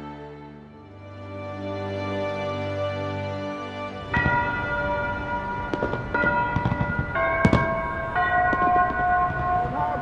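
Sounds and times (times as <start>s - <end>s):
clock tower bells chiming: 4.0s - 10.0s.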